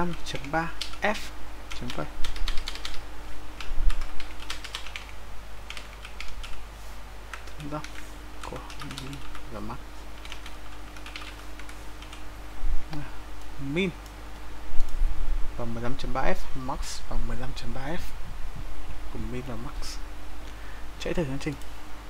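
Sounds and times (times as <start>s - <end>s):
typing on a computer keyboard: 0.0s - 1.0s, 1.7s - 3.0s, 3.6s - 5.1s, 5.7s - 6.6s, 7.3s - 9.4s, 10.2s - 12.2s
person speaking: 0.0s - 2.9s, 7.3s - 10.3s, 12.8s - 14.1s, 15.6s - 18.2s, 19.1s - 20.1s, 21.0s - 21.7s.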